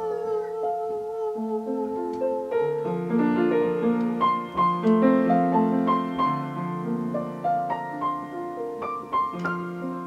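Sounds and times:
upright piano playing slowly: 0.0 - 10.0.

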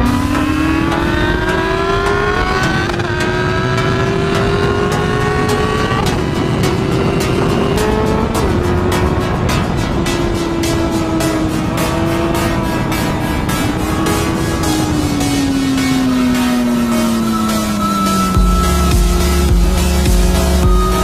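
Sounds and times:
background music with steady beat: 0.0 - 21.0
motorcycle engine running: 0.0 - 21.0.

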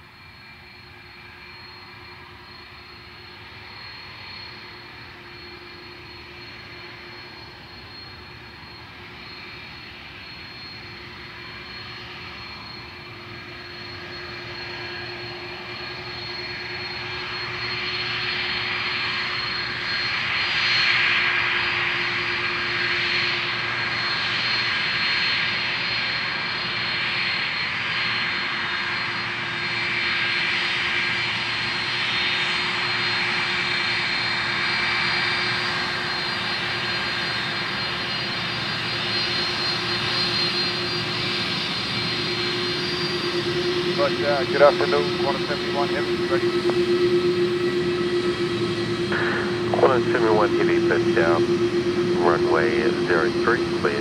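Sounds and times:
jet engines whining: 0.0 - 54.0.

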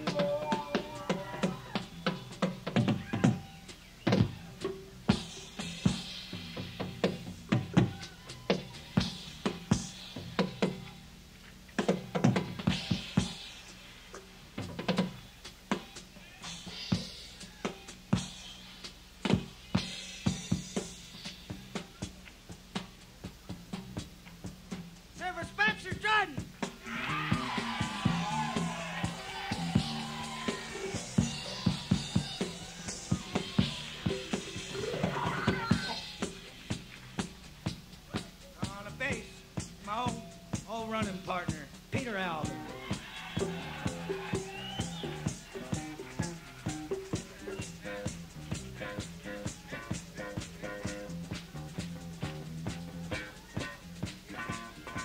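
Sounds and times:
live rock band playing: 0.0 - 10.9, 11.8 - 13.8, 14.6 - 22.2, 22.8 - 55.0.

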